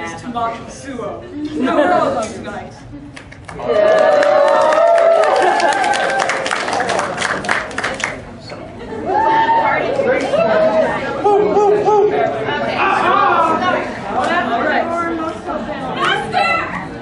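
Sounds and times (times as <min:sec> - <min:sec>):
voices chattering and calling out: 0:08.2 - 0:17.0.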